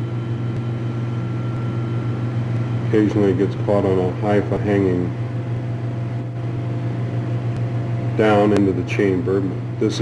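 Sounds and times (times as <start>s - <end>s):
faint high whine: 0.0s - 10.0s
steady low hum: 0.0s - 10.0s.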